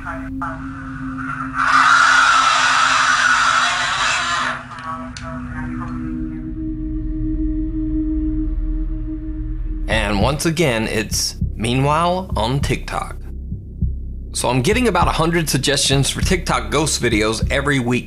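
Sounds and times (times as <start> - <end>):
eerie droning music: 0.0 - 18.0
steady low drone: 0.0 - 18.0
raspy hissing voice-like burst: 1.0 - 5.0.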